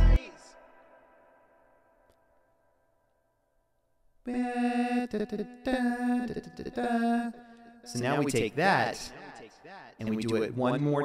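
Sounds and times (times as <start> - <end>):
man singing auto-tuned notes: 4.3 - 10.7.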